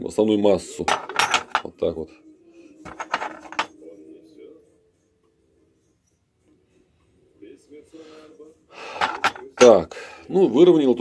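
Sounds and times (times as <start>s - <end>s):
handling sounds: 0.9s - 1.7s, 2.9s - 3.7s, 8.8s - 9.8s.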